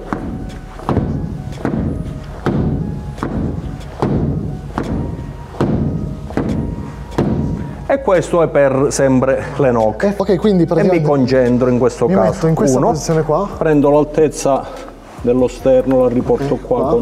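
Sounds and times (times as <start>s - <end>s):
punches thudding into padded wall: 0.1s - 7.6s.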